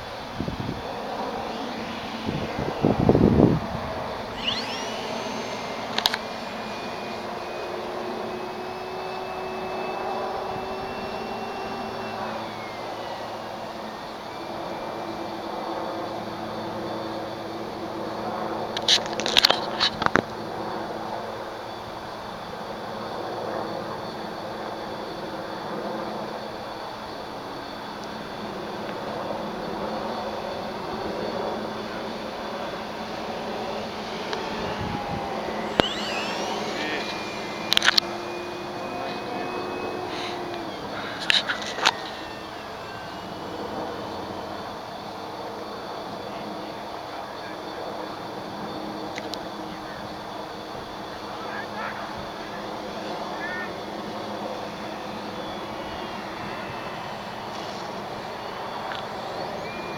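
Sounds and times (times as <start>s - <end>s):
electric model plane motor whining: 0.0s - 59.9s.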